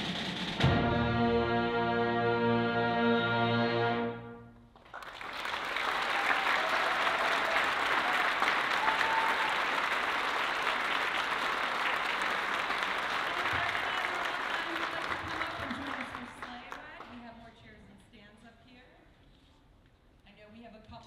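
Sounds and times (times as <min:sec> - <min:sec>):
audience applauding: 0:04.8 - 0:17.2.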